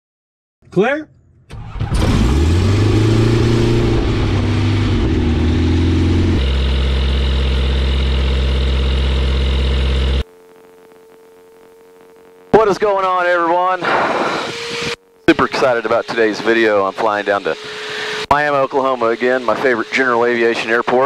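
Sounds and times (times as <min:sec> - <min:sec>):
aircraft engine starting and idling: 0:01.3 - 0:10.2, 0:13.8 - 0:21.0
faint steady hum: 0:10.1 - 0:18.2.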